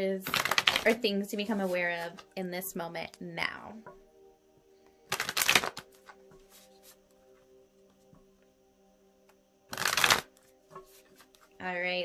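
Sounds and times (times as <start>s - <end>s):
cards being shuffled: 0.2s - 1.0s, 5.1s - 7.0s, 9.7s - 11.5s.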